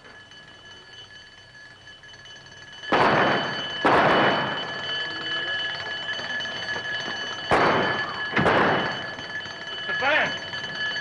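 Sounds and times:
alarm bell ringing: 0.0s - 11.0s
loud sudden bangs: 2.9s - 4.6s, 7.5s - 9.1s.

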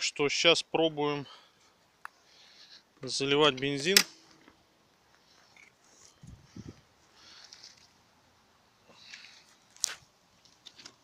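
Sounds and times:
soft rustles: 5.0s - 8.1s.

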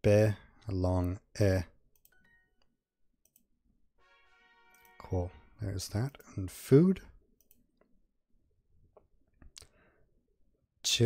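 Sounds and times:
computer mouse clicks: 3.2s - 3.5s, 7.4s - 7.9s.

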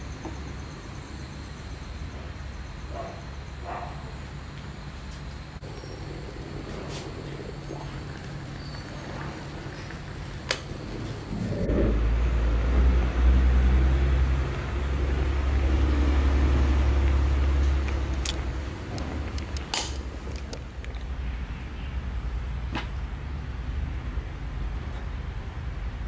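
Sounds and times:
moka pot gurgling: 5.6s - 11.8s.

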